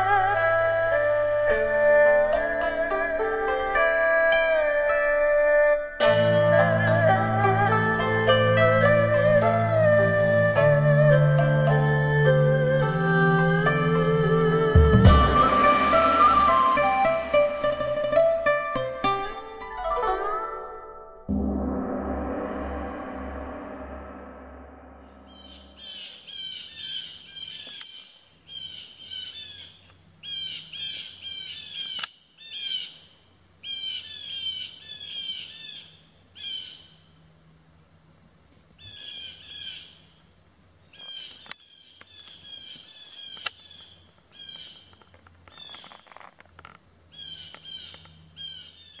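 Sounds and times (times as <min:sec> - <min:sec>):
birds chirping: 0:38.8 - 0:49.0.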